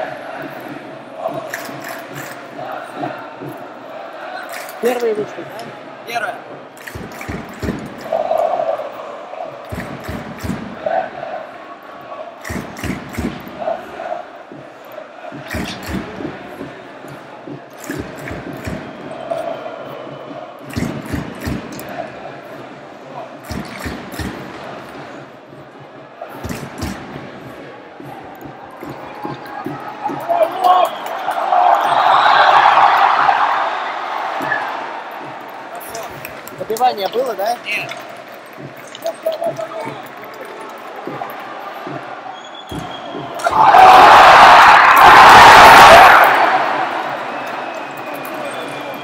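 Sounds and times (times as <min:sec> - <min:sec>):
crowd murmur and chatter: 0:00.0 - 0:49.0.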